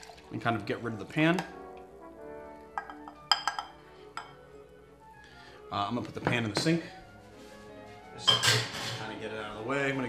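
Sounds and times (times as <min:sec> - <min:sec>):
cookware clinking on glass jug: 0:02.7 - 0:04.4, 0:08.2 - 0:09.1.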